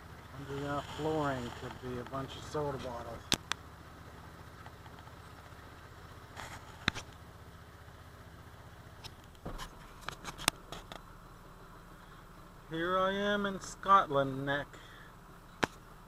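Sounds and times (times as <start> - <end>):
vehicle engine idling: 0.0 - 16.0.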